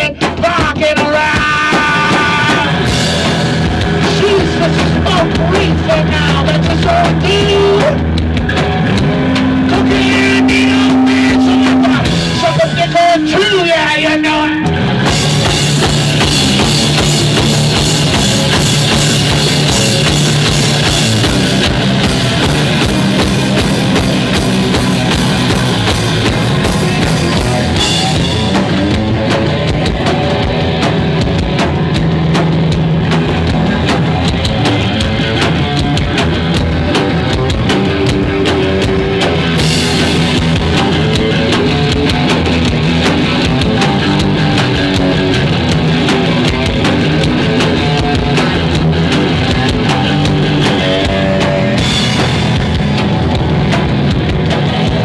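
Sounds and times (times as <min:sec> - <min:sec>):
drum kit: 0:00.0 - 0:55.0
electric guitars: 0:00.0 - 0:55.0.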